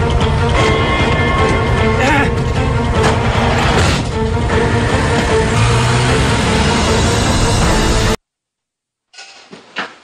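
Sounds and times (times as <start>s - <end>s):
background music: 0.0s - 8.2s.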